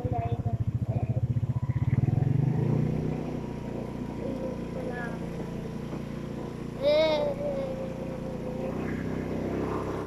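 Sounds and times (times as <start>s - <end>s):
motorcycle engine rumble: 0.0s - 10.0s.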